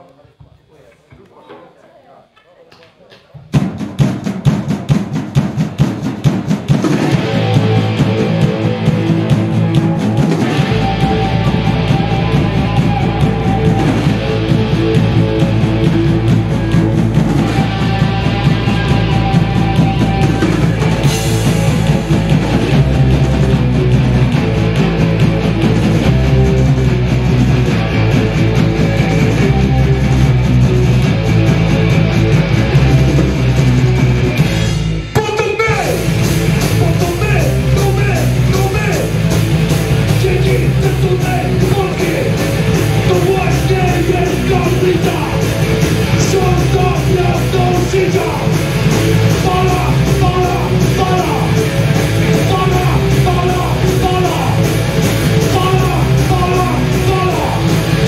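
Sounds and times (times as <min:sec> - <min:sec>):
drum kit: 0:03.1 - 0:58.0
electric guitars: 0:05.4 - 0:58.0
deep bass line: 0:06.9 - 0:58.0.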